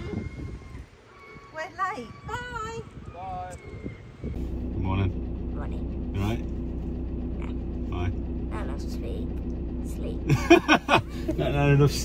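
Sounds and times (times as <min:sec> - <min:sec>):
diesel engine idling: 0:04.2 - 0:12.0.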